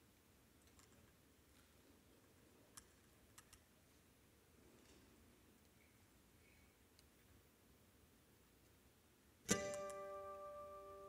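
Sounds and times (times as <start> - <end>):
faint clicks: 2.7 - 3.7.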